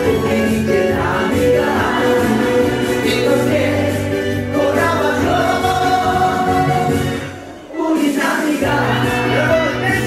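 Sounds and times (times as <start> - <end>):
person singing into a microphone: 0.0 - 7.0
karaoke backing track: 0.0 - 10.0.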